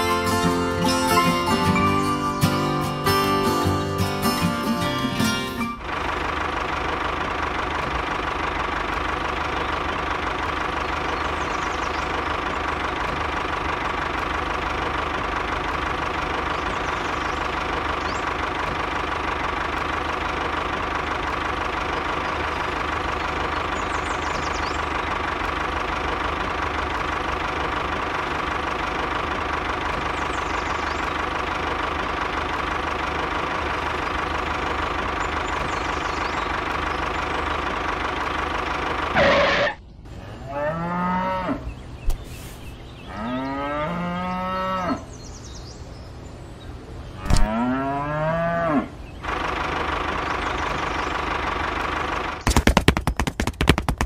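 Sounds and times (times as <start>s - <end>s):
tractor engine running: 0.0s - 40.4s, 45.0s - 47.9s, 49.0s - 54.0s
cow mooing: 40.4s - 41.7s, 43.1s - 45.1s, 47.2s - 48.9s.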